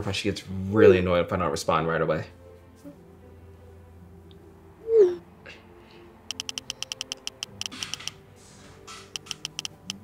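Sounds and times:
soft background music: 0.0s - 10.0s
smartphone keyboard clicks: 6.3s - 8.2s, 9.1s - 10.0s.

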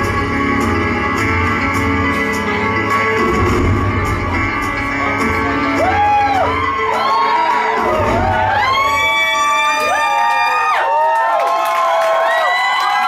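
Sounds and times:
music with bass beat: 0.0s - 9.8s
audience cheering and whooping: 5.2s - 13.0s.

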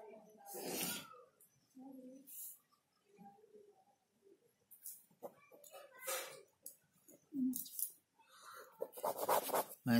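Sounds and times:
pen scratching on paper: 8.8s - 9.8s.

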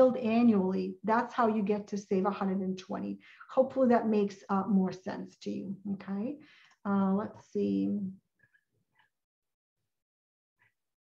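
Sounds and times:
woman speaking: 0.0s - 8.2s.

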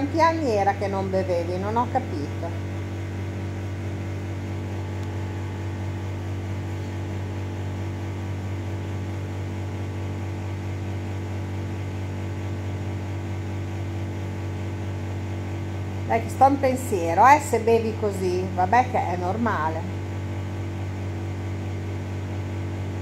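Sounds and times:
electric fan motor hum: 0.0s - 23.0s.

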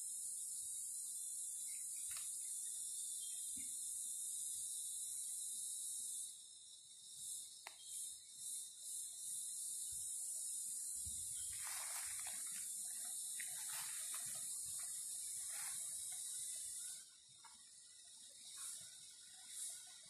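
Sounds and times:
insect chorus buzzing: 0.0s - 20.0s
footsteps in dry leaves: 11.5s - 12.7s, 13.4s - 14.6s, 15.4s - 15.9s.

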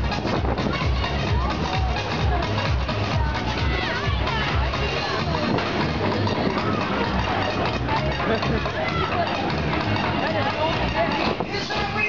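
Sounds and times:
thumping music beat: 0.0s - 12.0s
voices calling out: 0.0s - 12.0s.

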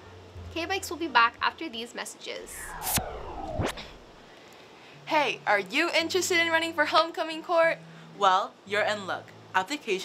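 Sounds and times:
swooshing sweep: 2.4s - 4.3s
sharp whip-like hit: 2.5s - 4.3s.

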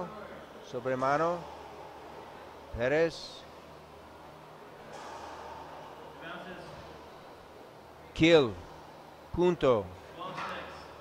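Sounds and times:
soft hissy breath: 0.5s - 9.4s.

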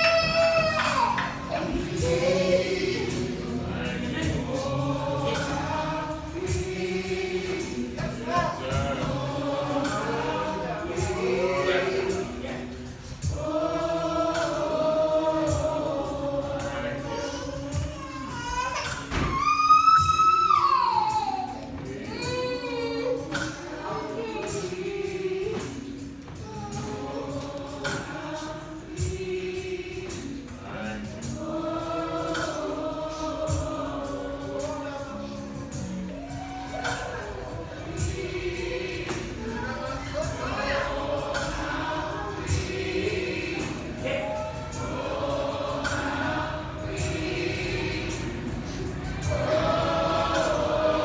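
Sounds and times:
choir singing gospel song: 0.0s - 51.0s
high lead voice singing: 0.0s - 51.0s
slow beat: 0.0s - 51.0s.

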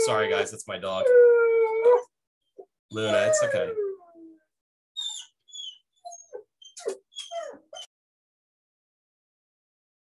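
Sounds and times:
dog crying high-pitched: 3.0s - 4.4s, 5.0s - 7.9s.

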